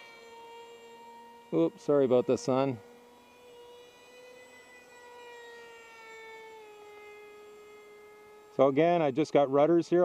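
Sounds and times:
model jet motor whining: 0.0s - 10.0s.

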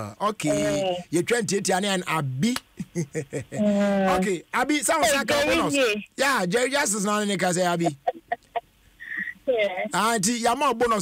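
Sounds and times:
woman speaking over telephone: 0.4s - 1.0s, 3.6s - 4.3s, 5.0s - 6.1s, 7.9s - 9.9s.

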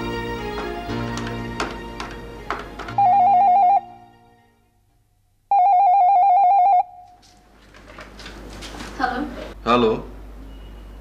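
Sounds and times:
music: 0.0s - 4.8s
telephone ringing with warbling trill: 3.0s - 4.0s, 5.5s - 7.0s.

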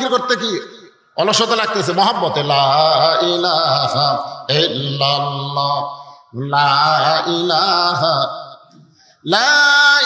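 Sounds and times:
man chanting into a microphone: 0.0s - 10.0s.

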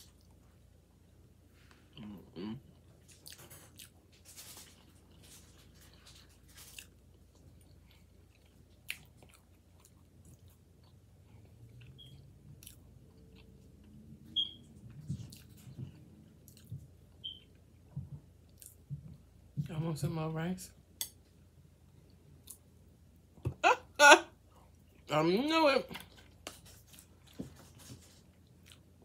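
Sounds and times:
chewing food close up: 1.9s - 18.8s.

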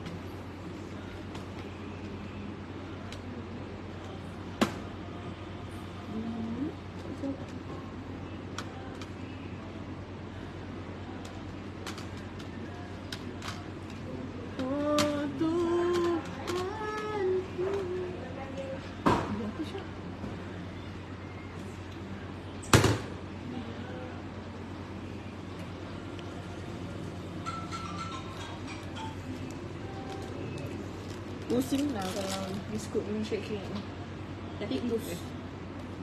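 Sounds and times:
low background hum with hiss: 0.0s - 36.0s.

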